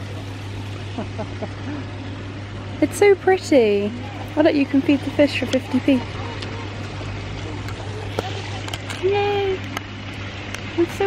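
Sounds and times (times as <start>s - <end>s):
steady low hum: 0.0s - 11.0s
faint murmuring voices: 3.2s - 9.8s.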